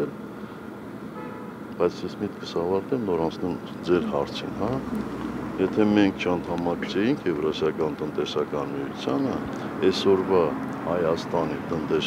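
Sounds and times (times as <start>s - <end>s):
low street background: 0.0s - 12.0s
faint car horn: 1.1s - 1.6s.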